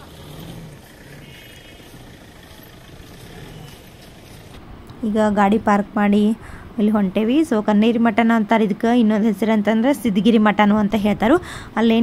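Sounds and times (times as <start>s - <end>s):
car engine running: 0.0s - 5.0s.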